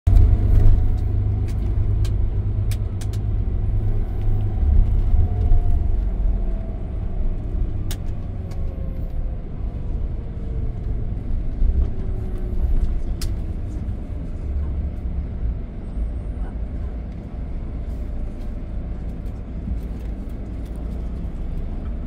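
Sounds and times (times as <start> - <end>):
bus engine and road rumble: 0.0 - 22.0.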